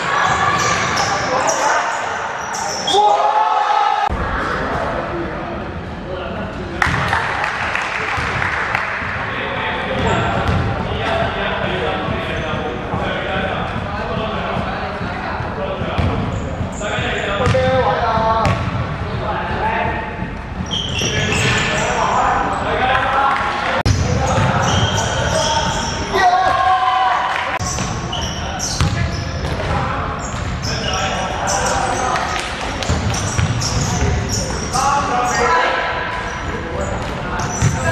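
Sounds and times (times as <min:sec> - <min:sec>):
sneaker squeaks: 0:00.0 - 0:03.2, 0:10.0 - 0:11.2, 0:15.9 - 0:17.8, 0:20.3 - 0:22.8, 0:23.9 - 0:26.4, 0:27.6 - 0:37.9.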